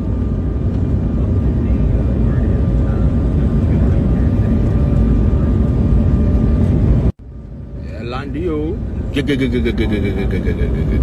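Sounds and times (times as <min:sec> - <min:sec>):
vehicle rumble: 0:00.0 - 0:11.0.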